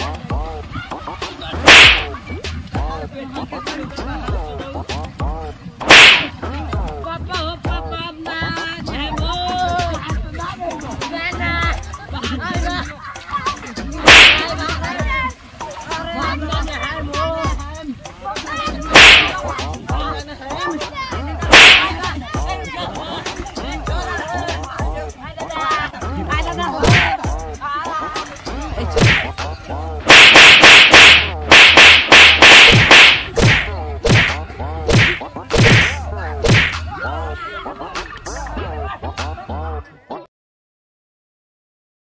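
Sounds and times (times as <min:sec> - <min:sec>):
children's voices: 0:00.0 - 0:30.1, 0:33.1 - 0:40.3
loud whip-like smacks: 0:01.6 - 0:02.1, 0:05.8 - 0:06.4, 0:14.0 - 0:14.6, 0:18.9 - 0:19.6, 0:21.5 - 0:22.1, 0:26.8 - 0:27.2, 0:29.0 - 0:29.4, 0:30.1 - 0:36.9.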